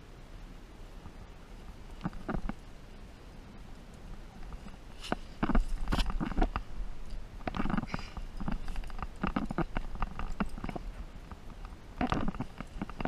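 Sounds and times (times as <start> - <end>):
wind rumbling on microphone: 0.0 - 13.0
hands scraping on rock: 4.6 - 6.7.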